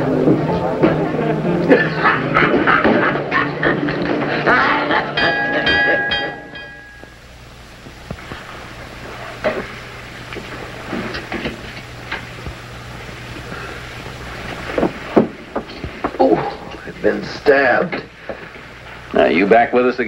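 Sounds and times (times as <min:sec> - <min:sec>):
sustained orchestral chord: 0:00.0 - 0:02.4, 0:03.5 - 0:07.1
low film hum and hiss: 0:00.0 - 0:20.0.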